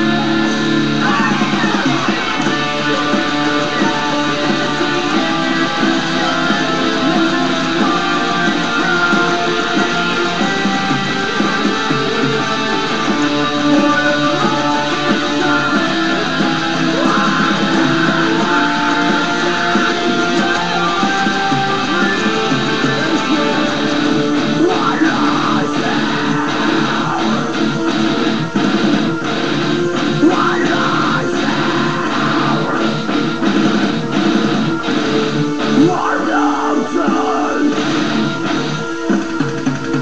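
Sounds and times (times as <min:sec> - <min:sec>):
electric guitar metal riff: 0:00.0 - 0:40.0.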